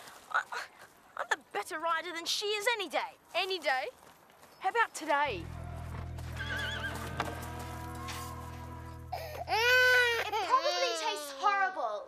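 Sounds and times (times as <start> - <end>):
baby crying: 9.1 - 11.6.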